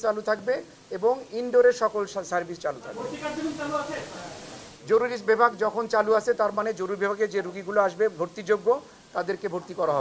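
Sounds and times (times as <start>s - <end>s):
man speaking: 0.0s - 10.0s
steady hiss: 0.0s - 10.0s.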